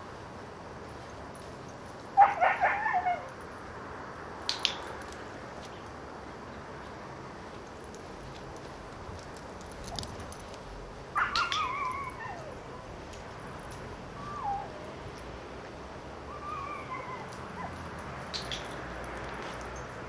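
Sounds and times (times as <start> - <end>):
high wavering animal calls: 11.1 - 12.9, 14.1 - 15.0, 16.2 - 17.8.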